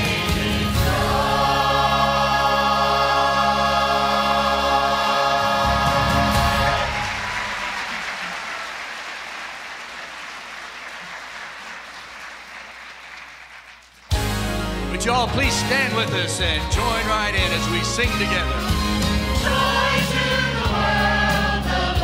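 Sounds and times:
choir holding chord: 0.0 - 7.7, 18.7 - 22.0
music: 0.0 - 7.8, 14.1 - 22.0
audience applause: 5.6 - 14.2.

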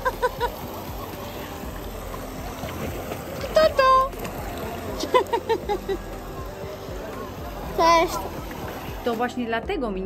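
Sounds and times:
water falling into pool: 0.0 - 9.4.

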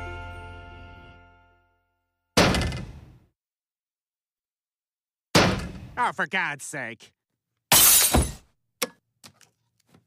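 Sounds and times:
cartoon heavy thunk: 2.4 - 3.2, 5.3 - 6.0, 7.7 - 8.5.

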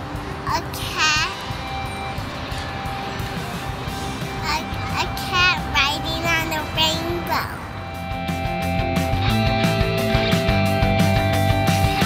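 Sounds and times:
light background music: 0.0 - 12.0
girl speaking in high voice: 0.4 - 1.4, 4.4 - 7.8.

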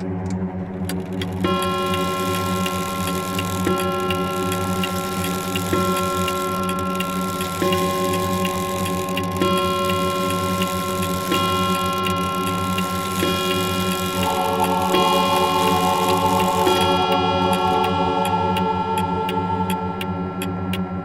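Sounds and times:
low drone: 0.0 - 21.0
sustained synth chords: 0.0 - 21.0
clock-like ticks: 0.8 - 20.9.

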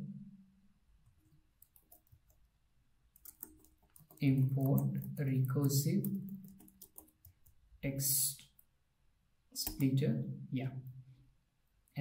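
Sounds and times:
faint keyboard keystrokes: 3.2 - 7.6.

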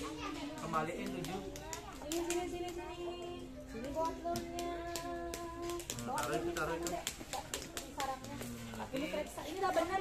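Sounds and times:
young children's voices: 0.0 - 0.6
small objects clicking on mat: 0.6 - 2.8, 4.3 - 9.2.

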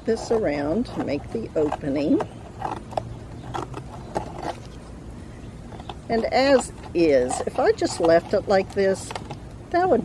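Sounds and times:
scissors cutting cardboard: 0.0 - 4.8, 5.8 - 9.3.

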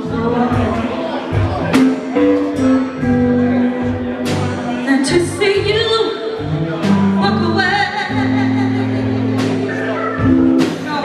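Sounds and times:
woman singing a soul-blues ballad: 0.0 - 1.0, 3.0 - 9.6
live band playing: 0.0 - 11.0.

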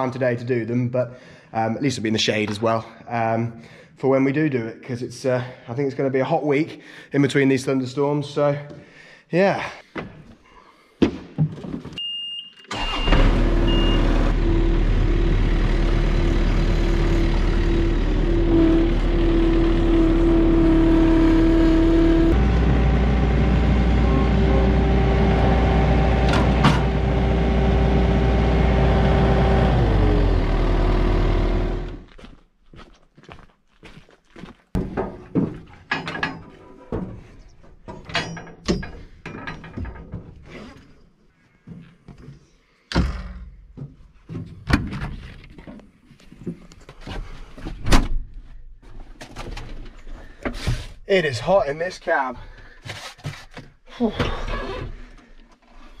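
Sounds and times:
short electronic beep: 12.0 - 14.1
mower engine running: 12.7 - 32.1.

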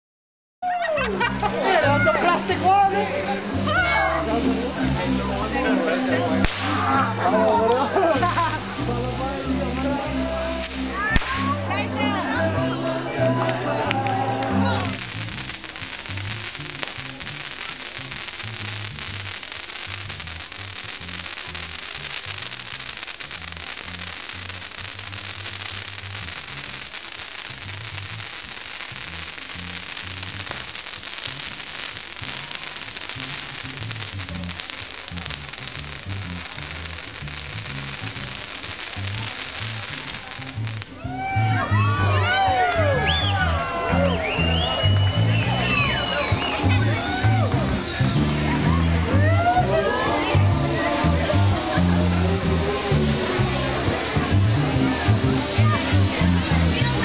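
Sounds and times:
firecrackers crackling: 0.6 - 57.0
music with bass line: 0.7 - 30.7, 33.1 - 57.0.

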